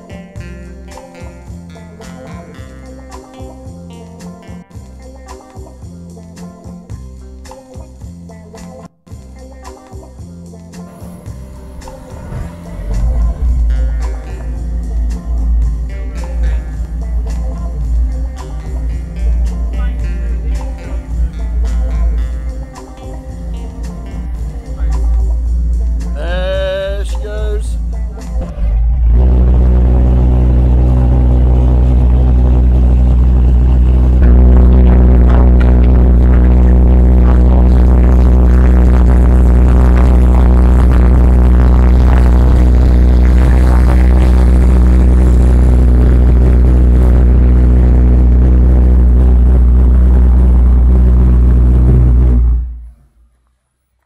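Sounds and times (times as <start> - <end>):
pulse jet engine droning: 10.9 - 26.2, 27.3 - 53.0.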